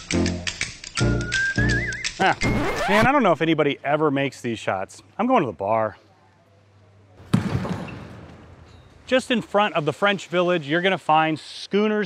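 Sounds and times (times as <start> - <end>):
basketball hitting hoop: 7.3 - 8.3.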